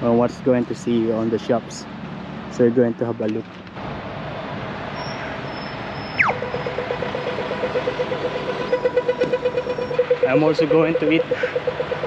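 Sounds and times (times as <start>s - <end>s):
road traffic: 0.0s - 12.0s
falling electronic chirp: 5.0s - 12.0s
rapid crossing signal ticking: 5.0s - 12.0s.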